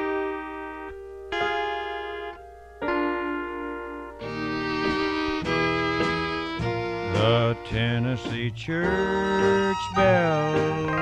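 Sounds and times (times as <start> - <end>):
keyboard playing sustained chords: 0.0 - 11.0.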